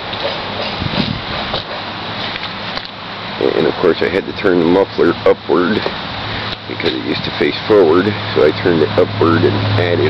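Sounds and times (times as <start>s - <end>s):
background rumble and hiss: 0.0s - 10.0s.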